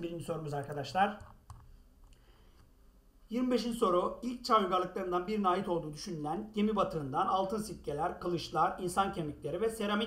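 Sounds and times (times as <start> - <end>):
computer mouse click: 0.7 - 2.7.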